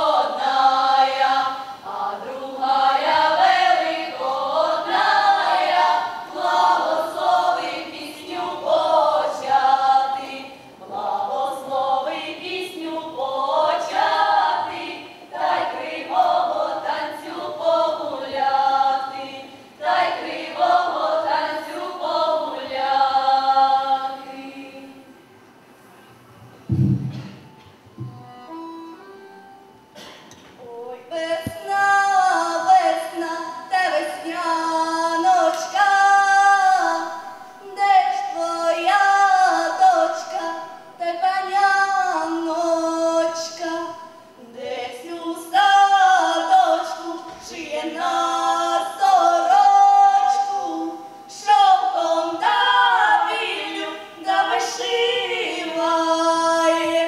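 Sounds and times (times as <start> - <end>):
girls' choir singing a cappella: 0.0 - 25.2, 30.0 - 57.0
quiet held melody notes: 24.9 - 32.9
microphone handling thumps: 26.7 - 28.2.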